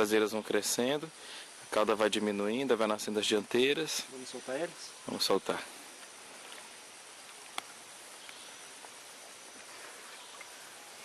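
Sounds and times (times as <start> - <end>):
riverside hiss: 0.0 - 11.0.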